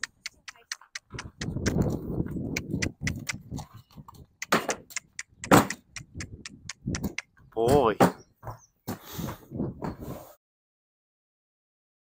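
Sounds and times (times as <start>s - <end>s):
clinks and knocks on horse trailer: 7.6s - 9.0s.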